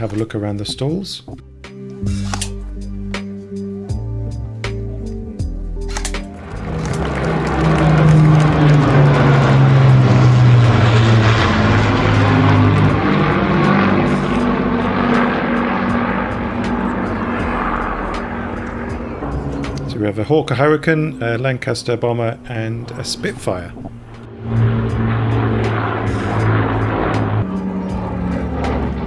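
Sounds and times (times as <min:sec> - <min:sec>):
propeller aircraft engines droning: 0:00.0 - 0:29.0.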